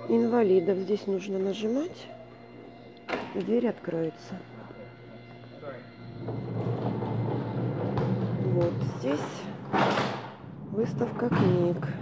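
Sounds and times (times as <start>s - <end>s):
automatic door opener hum: 5.3s - 10.7s.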